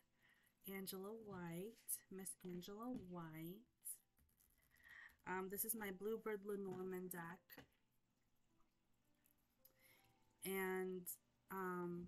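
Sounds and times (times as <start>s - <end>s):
woman speaking: 0.7s - 4.0s, 5.3s - 7.6s, 10.4s - 12.0s.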